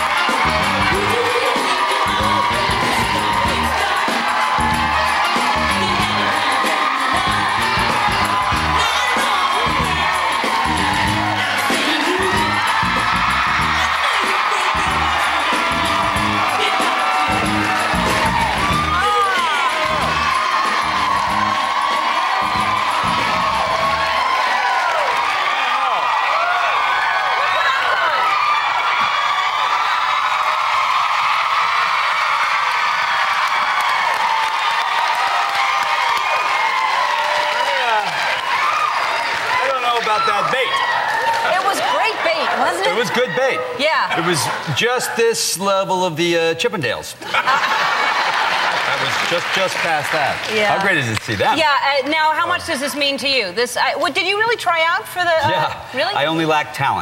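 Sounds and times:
pop music with steady beat: 0:00.0 - 0:24.2
audience cheering and screaming: 0:00.0 - 0:45.4, 0:47.2 - 0:56.4.

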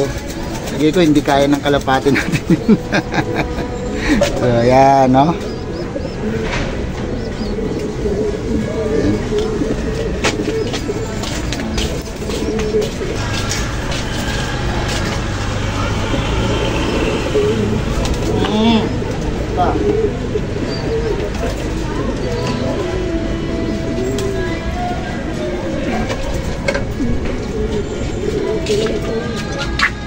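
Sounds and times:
pigeons cooing: 0:00.0 - 0:30.0.

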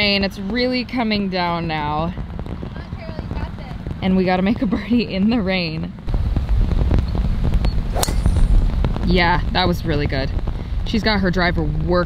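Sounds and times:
wind on microphone: 0:00.0 - 0:12.0
golf driver striking ball: 0:07.9 - 0:08.8.

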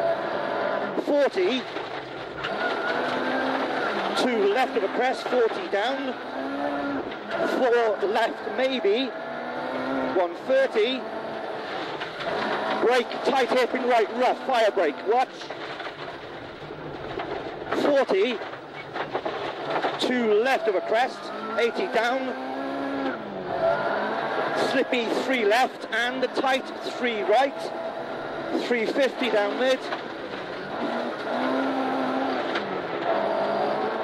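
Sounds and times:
car engine under load: 0:00.0 - 0:34.0
gravel and tyre noise: 0:00.0 - 0:34.0
person talking: 0:01.0 - 0:01.7, 0:04.1 - 0:06.2, 0:07.4 - 0:09.1, 0:10.1 - 0:11.0, 0:12.8 - 0:15.5, 0:17.8 - 0:18.4, 0:20.0 - 0:22.4, 0:24.5 - 0:27.7, 0:28.5 - 0:30.0.

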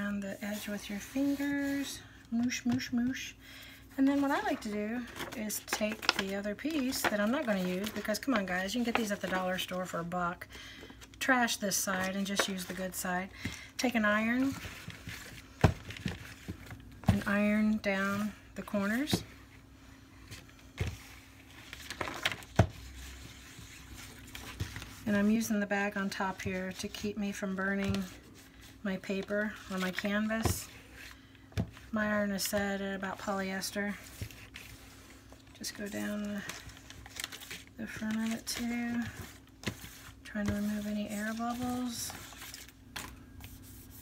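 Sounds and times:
paper rustling: 0:04.1 - 0:09.6, 0:34.0 - 0:44.0.

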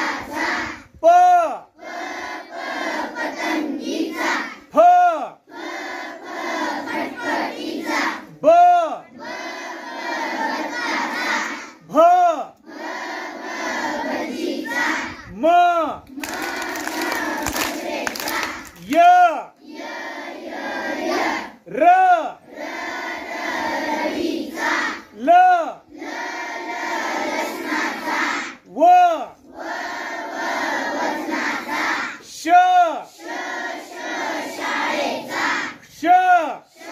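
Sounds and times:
children chanting together: 0:00.0 - 0:00.9, 0:01.7 - 0:04.7, 0:05.4 - 0:11.9, 0:12.6 - 0:15.4, 0:16.1 - 0:18.9, 0:19.5 - 0:21.7, 0:22.4 - 0:28.7, 0:29.4 - 0:32.3, 0:33.0 - 0:35.9, 0:36.6 - 0:36.9.

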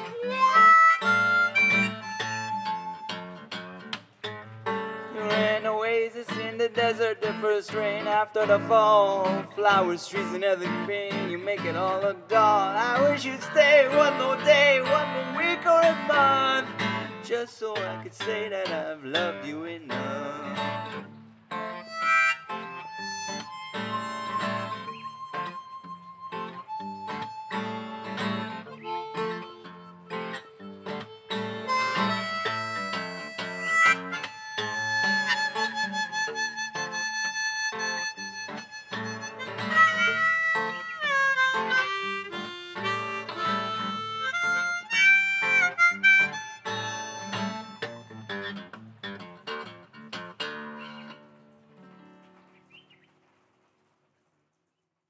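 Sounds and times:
blues harmonica: 0:00.0 - 0:52.0
fingerpicked acoustic guitar: 0:00.0 - 0:54.0.

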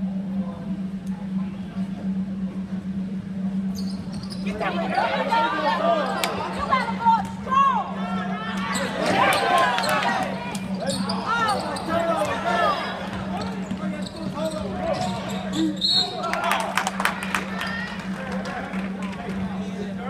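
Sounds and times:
steady low hum: 0:00.0 - 0:20.0
sneakers squeaking: 0:03.6 - 0:07.4, 0:08.5 - 0:16.3
players calling out: 0:04.1 - 0:18.8.

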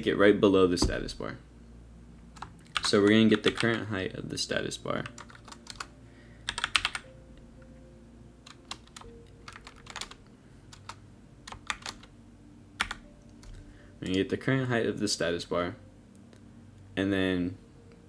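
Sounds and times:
typing on computer keyboard: 0:05.0 - 0:05.9, 0:06.5 - 0:07.0, 0:08.5 - 0:12.1, 0:12.8 - 0:13.6.

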